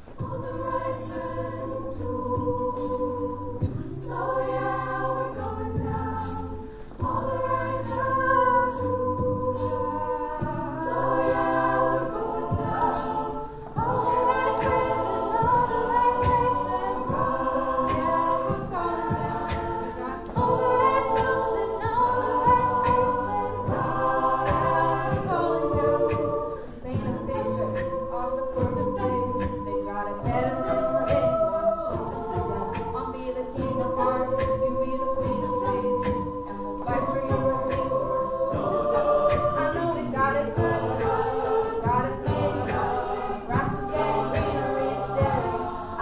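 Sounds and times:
a cappella choir singing chords: 0.0s - 46.0s
vocal percussion beat: 0.0s - 46.0s.

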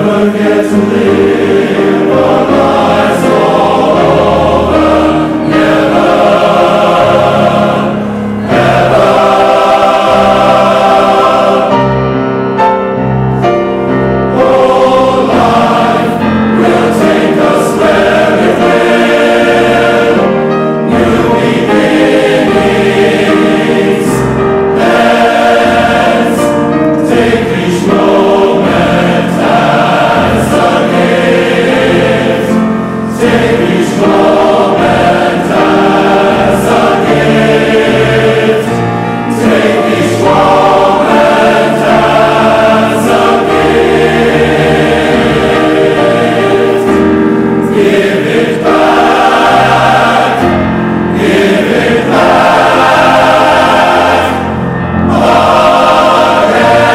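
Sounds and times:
mixed choir singing: 0.0s - 56.9s.

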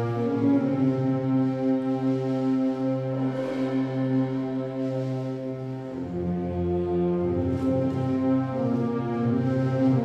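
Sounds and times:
wind band playing a slow march: 0.0s - 10.0s.

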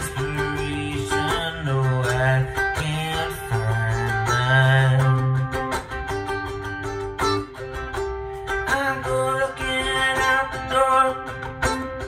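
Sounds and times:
ukulele strumming chords: 0.0s - 12.0s.

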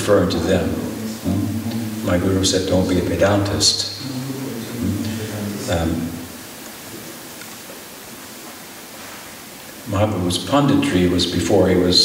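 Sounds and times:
steady hiss of recording noise: 0.0s - 12.0s.

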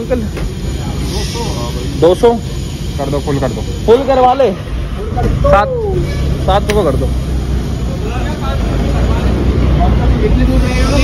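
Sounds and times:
vehicle engines idling: 0.0s - 11.0s.

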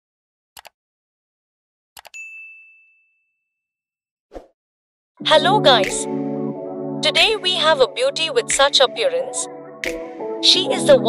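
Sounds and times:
bright bell ding: 2.2s - 3.4s.

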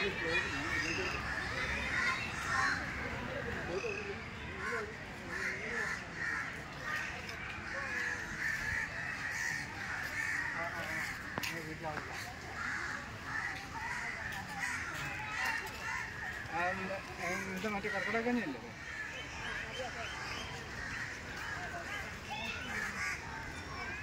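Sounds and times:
people talking faintly: 0.0s - 24.0s.

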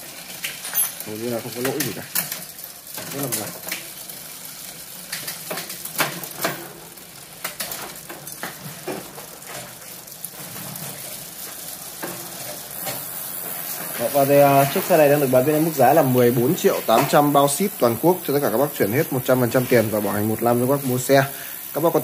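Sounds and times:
bicycle wheel ticking and whirring: 0.0s - 22.0s.

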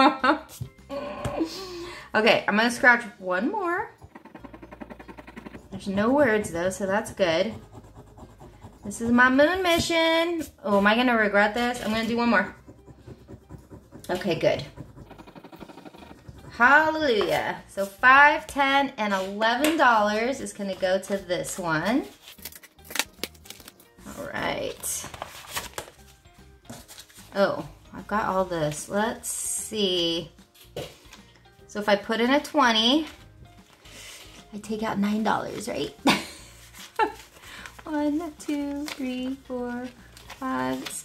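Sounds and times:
coin scratching scratch-off card: 4.0s - 9.7s, 11.5s - 18.0s
paper bills rustling: 22.0s - 27.4s, 36.4s - 41.0s.

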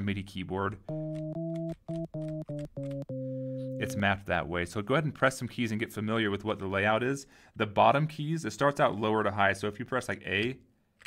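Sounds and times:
synth short notes: 0.9s - 4.2s.

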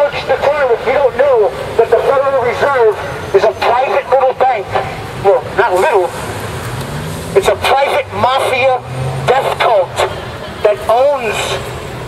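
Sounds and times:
man shouting through megaphone: 0.0s - 6.2s, 7.4s - 11.7s
street traffic: 0.0s - 12.0s
vehicle engine humming: 0.0s - 12.0s.

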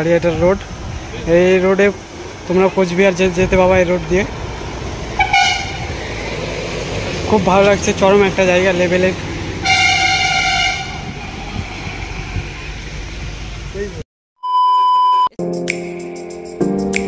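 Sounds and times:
low rumble of road traffic: 0.0s - 14.0s
vehicle horn: 5.2s - 5.9s, 9.6s - 11.2s.

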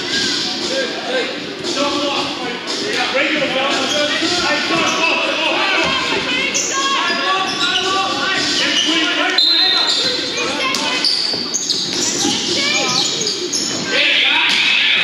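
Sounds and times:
sneakers squeaking: 3.7s - 14.8s.

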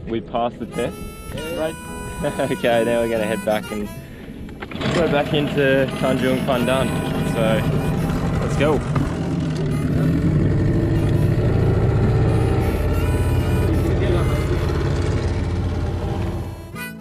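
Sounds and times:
outboard motor droning: 0.0s - 17.0s.

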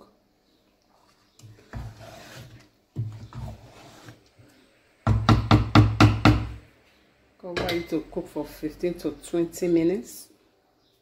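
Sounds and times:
wooden spoon scraping stew: 0.9s - 4.6s.

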